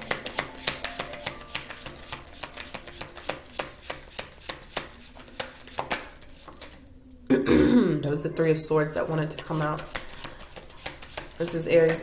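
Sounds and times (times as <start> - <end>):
cards being shuffled: 0.0 - 6.9, 9.1 - 12.0.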